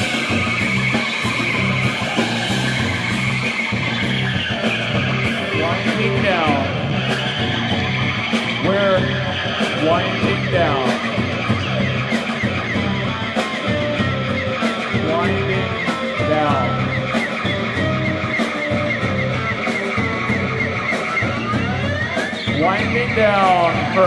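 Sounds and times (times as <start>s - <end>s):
drum kit and cymbals: 0.0s - 24.0s
electric bass: 0.0s - 24.0s.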